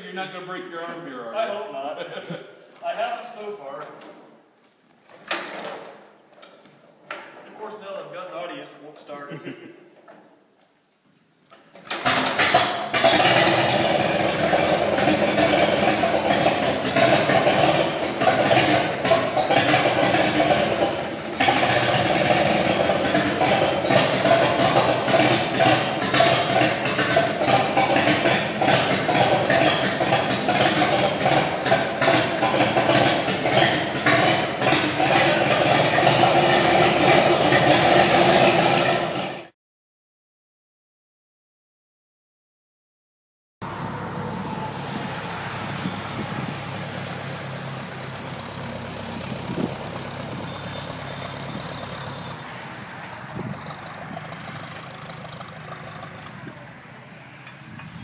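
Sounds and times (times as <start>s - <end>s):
tractor engine hand-cranked: 11.7s - 39.4s, 53.2s - 56.5s
tractor engine running loudly: 11.9s - 39.5s, 43.6s - 58.0s.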